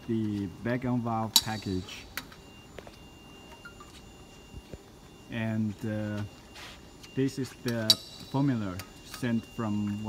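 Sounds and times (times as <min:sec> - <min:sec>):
faint steady high tone: 0:00.0 - 0:10.0.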